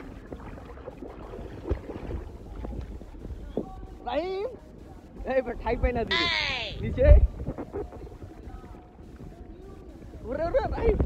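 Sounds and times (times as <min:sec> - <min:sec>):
small splashes and knocks: 0:00.0 - 0:03.0
pool water sloshing and splashing: 0:00.0 - 0:03.9
wind rumble on microphone: 0:00.0 - 0:11.0.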